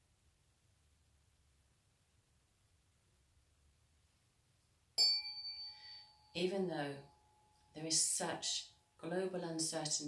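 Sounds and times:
mallet striking tuning forks: 5.0 - 6.4
tuning forks ringing: 5.0 - 6.4.

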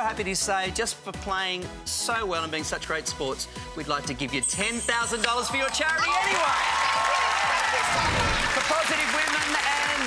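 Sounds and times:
music playing: 0.0 - 10.0
audience applauding and cheering: 5.2 - 10.0.

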